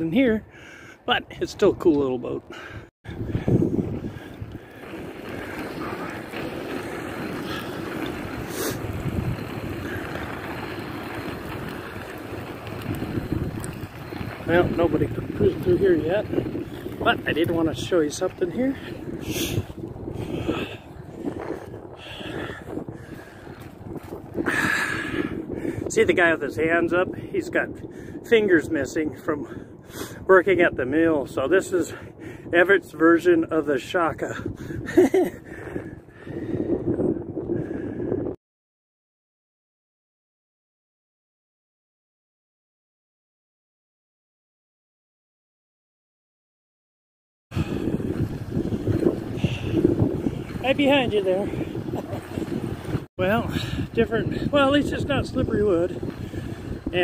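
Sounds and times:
wind on microphone: 0:01.2 - 0:38.4, 0:47.5 - 0:57.0
skate wheels rolling on wet asphalt: 0:03.2 - 0:26.8, 0:33.8 - 0:35.6, 0:47.6 - 0:57.0.

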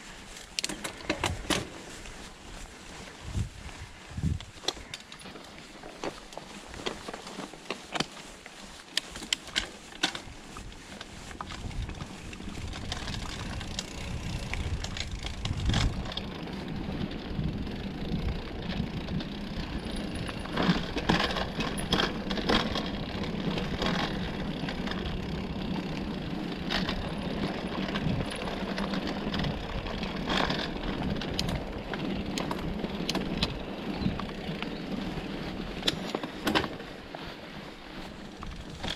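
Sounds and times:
bike rattling and clicking: 0:00.0 - 0:38.9
bike tyre and wind noise: 0:00.0 - 0:38.9.

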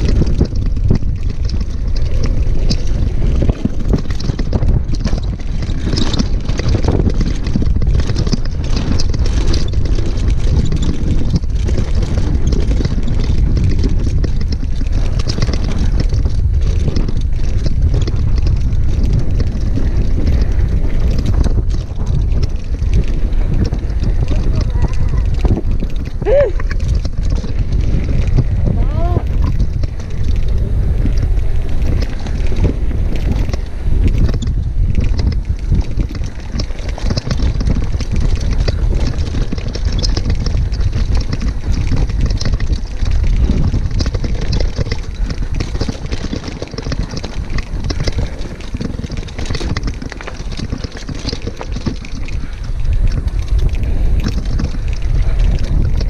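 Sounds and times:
bike rattling over rocks: 0:00.0 - 0:56.0
tyres on dirt: 0:00.0 - 0:56.0
wind buffeting microphone: 0:00.0 - 0:56.0.

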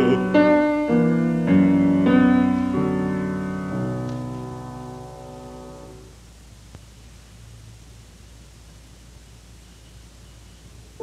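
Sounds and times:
bass voice singing held note: 0:00.0 - 0:00.8
piano chords: 0:00.0 - 0:06.1.

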